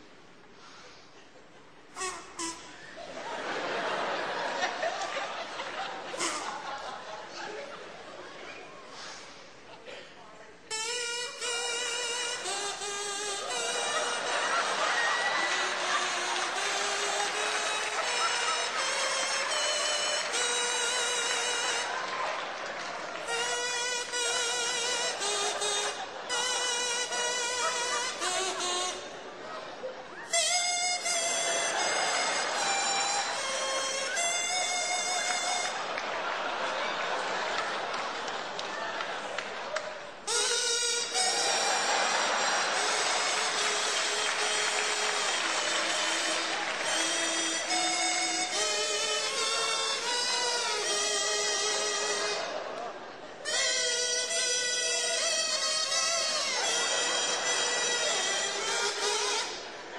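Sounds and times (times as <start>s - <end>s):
breathy hiss: 0.4s - 1.3s
buzzy reedy wind instrument tune: 1.8s - 9.6s, 10.6s - 59.9s.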